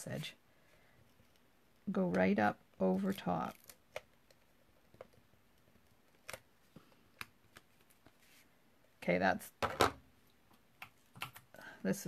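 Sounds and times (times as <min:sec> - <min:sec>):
adhesive tape clicking and crackling: 0:03.1 - 0:06.5.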